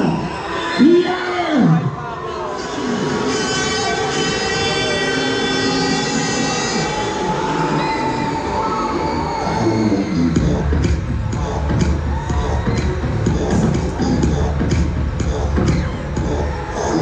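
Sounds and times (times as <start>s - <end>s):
horn-like tone over loudspeakers: 0.0s - 10.6s
funfair ride noise: 0.0s - 17.0s.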